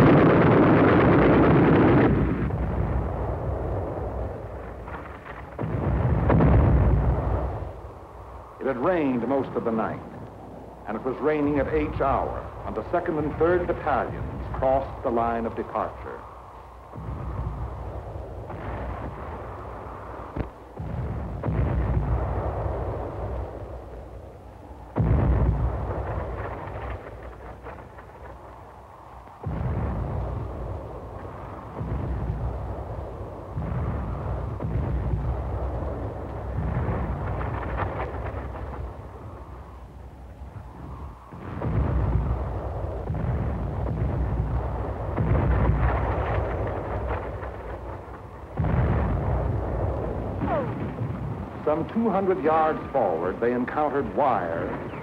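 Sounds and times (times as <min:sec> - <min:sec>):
artillery shell explosions: 0:00.0 - 0:55.0.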